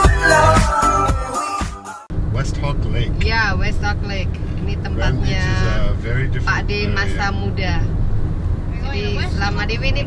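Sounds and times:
car road and engine rumble: 2.1 - 10.0
voices talking: 8.7 - 10.0.

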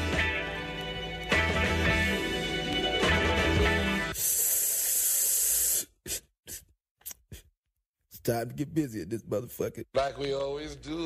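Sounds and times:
intro music: 0.0 - 4.2
loud high-pitched hiss: 4.1 - 5.9.

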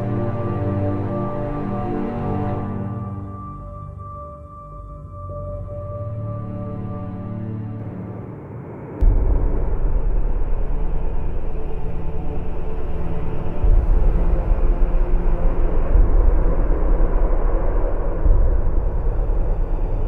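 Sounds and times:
deep rumbling drone: 0.0 - 20.0.

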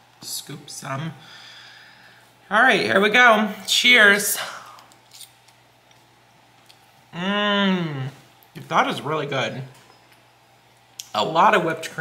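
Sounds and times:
quiet chewing: 4.6 - 7.1.

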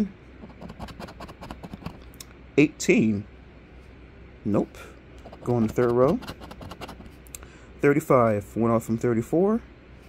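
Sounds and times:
coin scraping scratch-off ticket: 0.4 - 2.0, 5.3 - 7.0.

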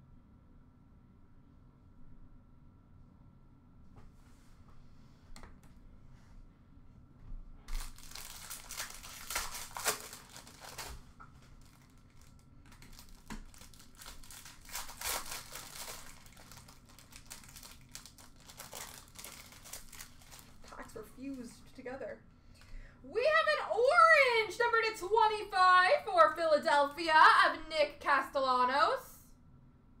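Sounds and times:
foil wrappers tearing and crinkling: 7.7 - 21.0.

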